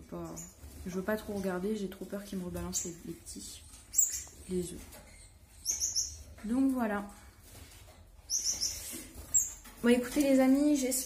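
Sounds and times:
finch chirping: 0.1 - 7.0, 8.2 - 11.0.

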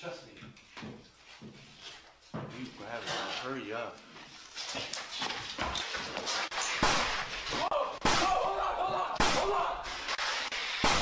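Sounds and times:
shuffling footsteps: 0.5 - 7.6.

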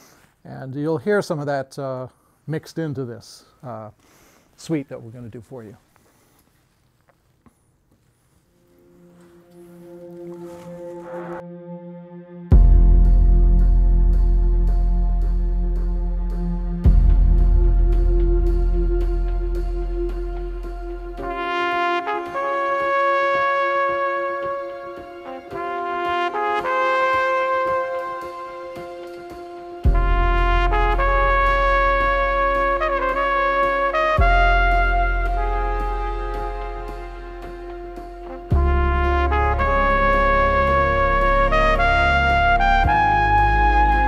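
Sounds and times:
trumpet playing slow melody: 8.5 - 44.0
backing track with soft beat: 12.5 - 44.0.

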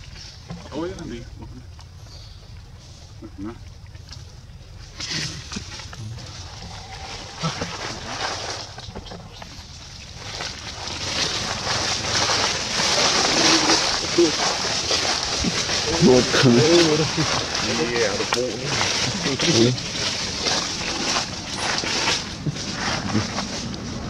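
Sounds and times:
dry leaves crunching underfoot: 4.0 - 24.0
person speaking: 6.0 - 8.7.

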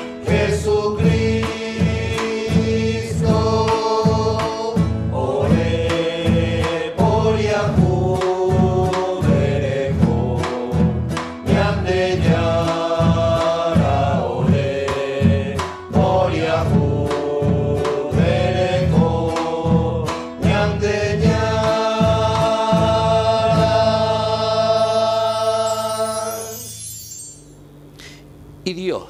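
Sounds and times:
choir singing a hymn: 0.0 - 26.8
acoustic guitar strumming: 0.0 - 28.6
drum steady beat: 0.3 - 24.4.

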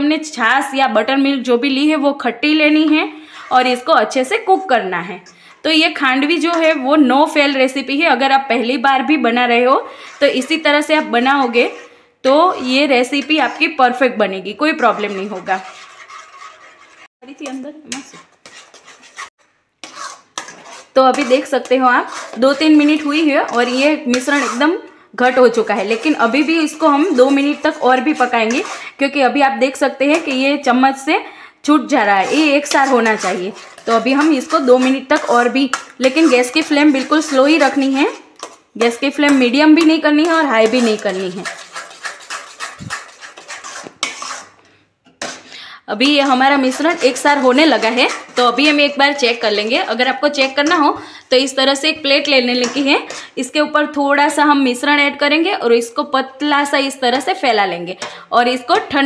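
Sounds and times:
spatula scraping batter in pan: 1.2 - 53.7, 57.9 - 59.0.

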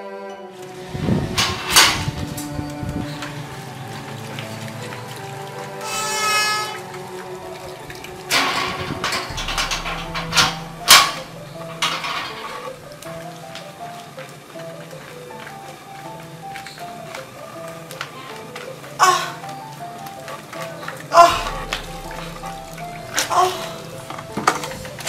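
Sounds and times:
slow sad film music: 0.0 - 25.0
sharp knocks: 8.0 - 13.2.

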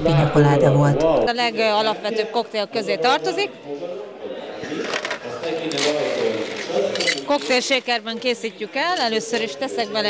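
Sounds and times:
chatter of voices: 0.0 - 10.0
cocktail shaker and bottles clatter: 4.8 - 8.0.

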